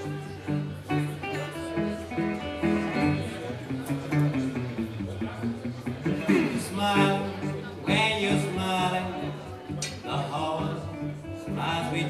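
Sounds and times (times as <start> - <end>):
resonator guitar melody: 0.0 - 12.0.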